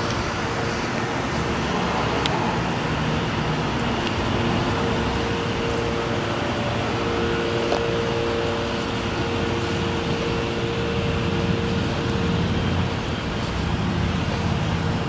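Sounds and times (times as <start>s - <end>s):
vehicle driving by slowly: 0.0s - 15.0s.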